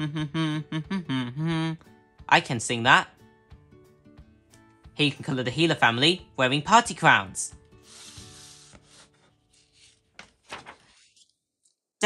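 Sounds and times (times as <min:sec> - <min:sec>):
magazine page rustling: 0:07.8 - 0:11.8.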